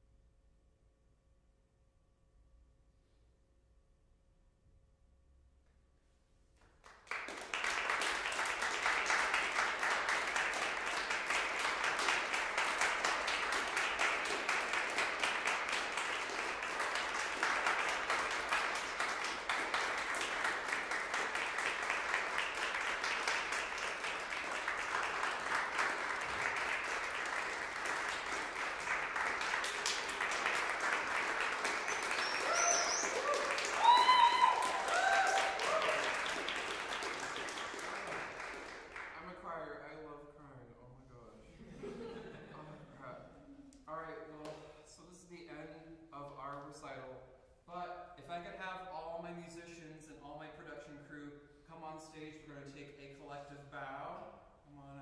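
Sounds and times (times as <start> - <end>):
audience applause: 6.9 - 39.1
people shouting: 32.4 - 36.0.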